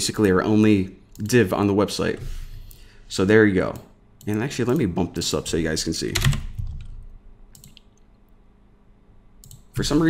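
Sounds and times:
person speaking: 0.0s - 6.9s, 9.6s - 10.0s
keyboard keystrokes: 6.1s - 8.0s.

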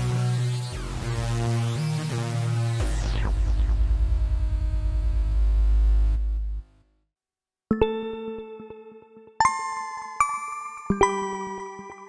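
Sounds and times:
synthesizer bass notes: 0.0s - 6.9s
deep pulsing synth note: 0.8s - 6.8s.

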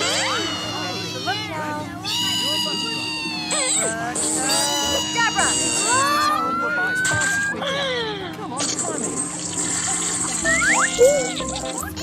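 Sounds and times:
squeaky cartoon sound effects: 0.0s - 7.8s, 8.6s - 12.0s
high-pitched cartoon voices: 0.0s - 8.9s, 9.5s - 12.0s.

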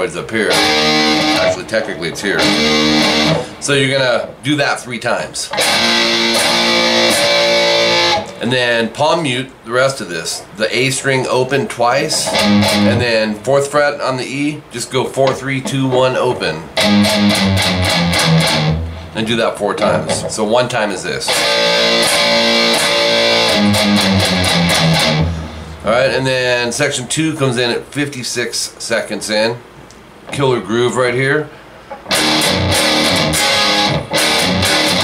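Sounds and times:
distorted electric guitar riff: 0.0s - 4.3s, 5.5s - 8.6s, 12.0s - 13.4s, 16.6s - 20.4s, 21.3s - 26.1s, 31.9s - 35.0s.

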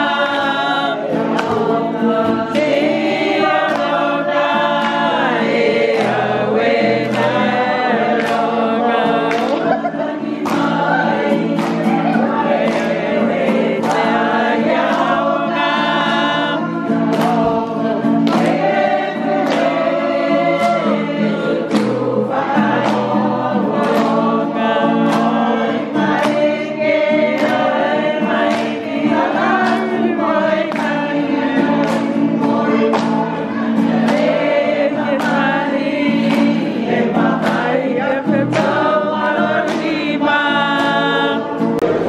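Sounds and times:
group singing in harmony: 0.0s - 42.0s
sharp rhythmic strokes: 0.0s - 42.0s.

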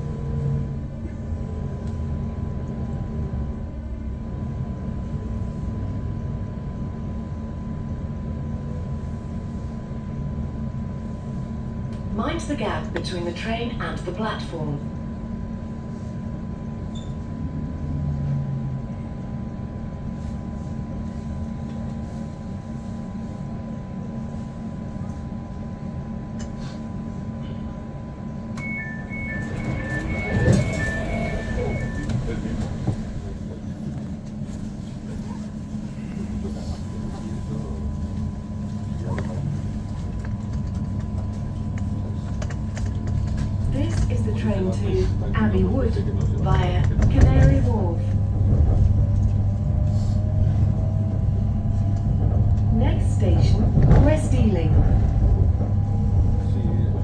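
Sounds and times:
train electrical hum: 0.0s - 57.0s
train rumbling away: 27.4s - 57.0s
door-closing warning beeps: 28.6s - 33.0s.

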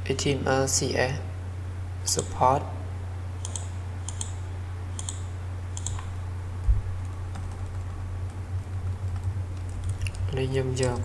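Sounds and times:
low electrical hum: 0.0s - 11.0s
keyboard keystrokes clicking: 5.0s - 5.2s, 5.8s - 6.1s.

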